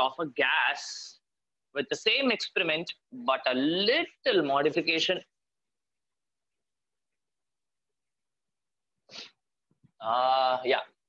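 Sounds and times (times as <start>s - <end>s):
person sharp breath: 9.1s - 9.4s.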